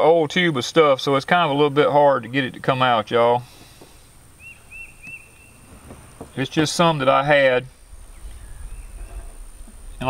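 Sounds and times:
faint outdoor background noise: 0:00.0 - 0:10.0
bird chirping: 0:03.6 - 0:10.0.

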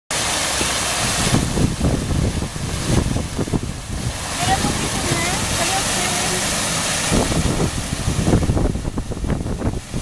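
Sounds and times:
low rumbles: 0:00.1 - 0:10.0
waterfall rushing splash: 0:00.1 - 0:10.0.

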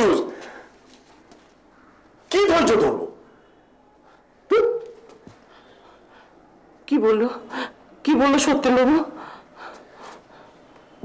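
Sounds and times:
faint breaths: 0:00.3 - 0:02.2, 0:03.2 - 0:04.5, 0:05.2 - 0:06.8, 0:09.1 - 0:11.0
woman speaking: 0:06.8 - 0:09.2.

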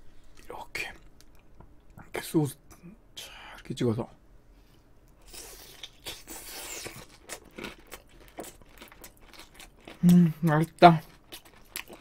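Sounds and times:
crunching breaded food: 0:05.3 - 0:12.0.

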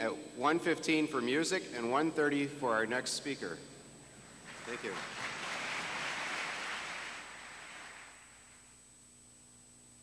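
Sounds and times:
audience applauding: 0:04.4 - 0:08.6.

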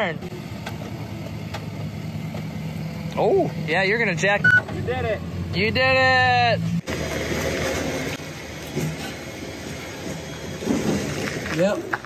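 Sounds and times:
truck engine running low: 0:00.0 - 0:12.0.

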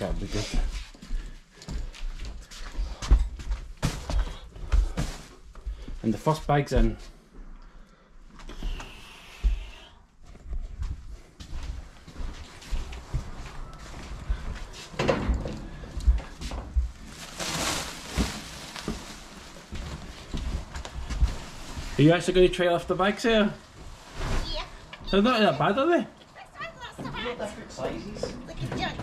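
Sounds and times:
rustling and scuffing: 0:00.0 - 0:06.0, 0:08.4 - 0:25.4
footsteps: 0:00.0 - 0:07.6, 0:08.2 - 0:25.8
dull thuds of heavy sacks: 0:16.8 - 0:22.0.

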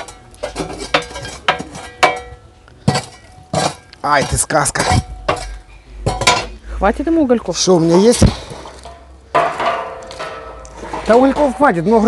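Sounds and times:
wood clattering on metal grill: 0:00.0 - 0:06.6, 0:08.2 - 0:12.0.

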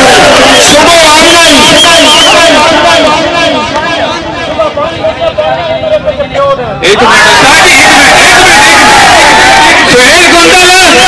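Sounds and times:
man chanting over loudspeaker: 0:09.8 - 0:11.0.

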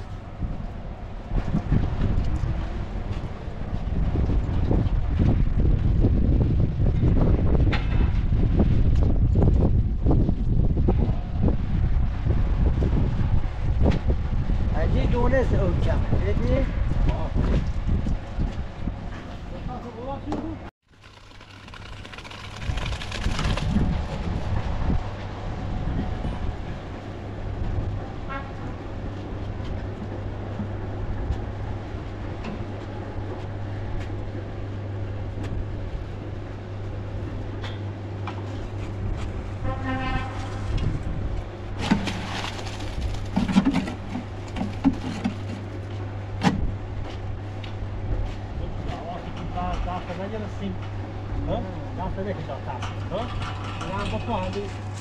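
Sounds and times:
knocks and clanks: 0:06.9 - 0:08.3, 0:41.8 - 0:45.7, 0:52.7 - 0:55.0
horn-like tone: 0:39.6 - 0:40.7.

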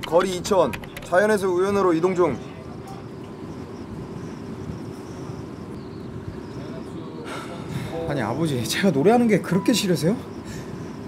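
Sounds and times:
wind noise: 0:00.0 - 0:09.2, 0:09.9 - 0:11.0
low ship's hum: 0:00.0 - 0:11.0.

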